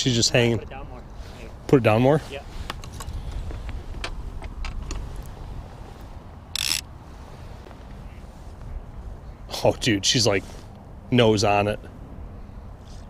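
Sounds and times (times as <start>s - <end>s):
boat background rumble: 0.0s - 11.2s.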